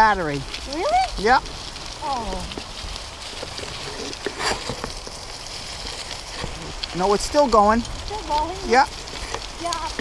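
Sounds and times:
bicycle tyres rolling over dry leaves: 0.0s - 10.0s.

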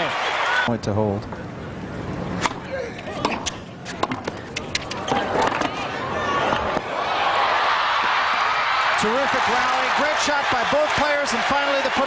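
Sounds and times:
crowd applause and cheering: 0.0s - 0.7s, 5.0s - 12.0s.

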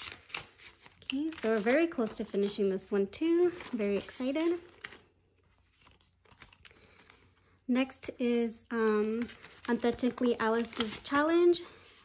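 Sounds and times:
plastic binder pocket crinkling: 0.0s - 7.4s, 9.0s - 11.3s.

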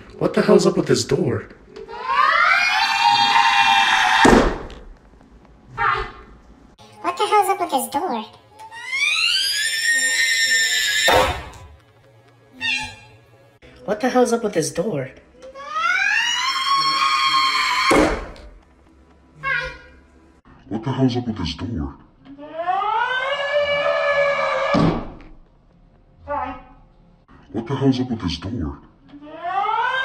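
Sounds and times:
door being smashed through: 4.2s - 4.8s.

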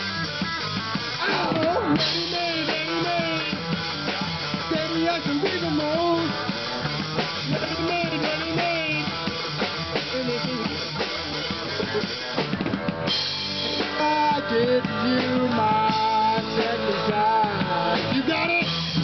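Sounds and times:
drum kit beat: 0.0s - 19.0s
electric guitar: 0.0s - 19.0s.

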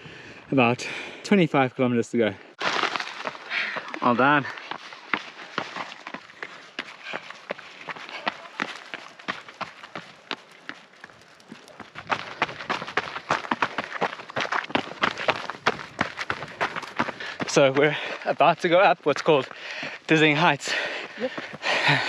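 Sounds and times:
running footsteps on stone: 2.6s - 22.0s.

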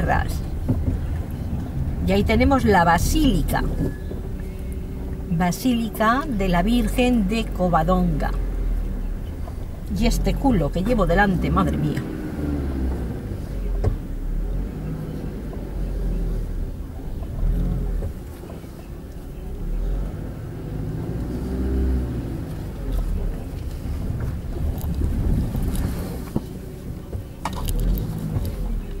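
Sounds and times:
wind buffeting microphone: 22.8s - 27.2s.

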